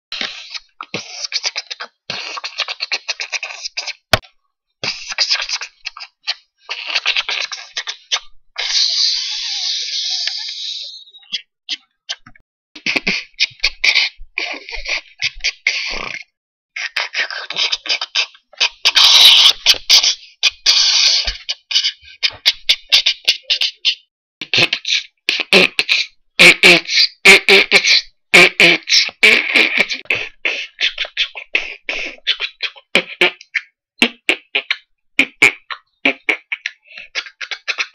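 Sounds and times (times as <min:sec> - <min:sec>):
person beatboxing: 0:00.1 - 0:37.9.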